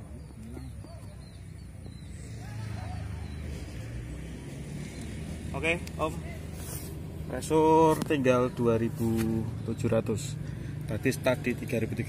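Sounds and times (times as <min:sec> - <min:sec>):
motor vehicle rumbling past: 0:00.0 - 0:12.0.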